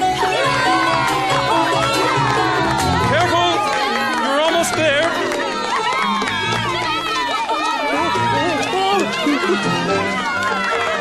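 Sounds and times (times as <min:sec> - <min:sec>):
background music: 0:00.0 - 0:11.0
crowd cheering and calling out: 0:00.0 - 0:11.0.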